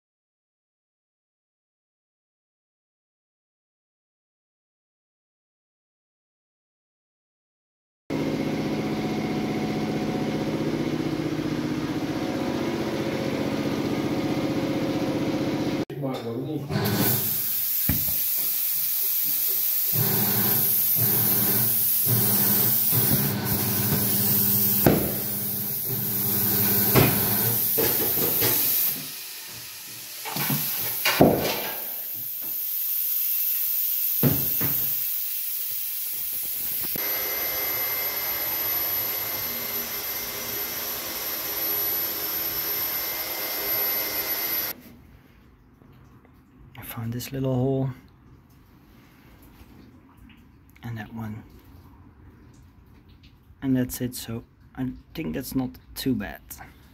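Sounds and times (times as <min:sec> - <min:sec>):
paint spraying hiss: 0:17.2 - 0:37.0.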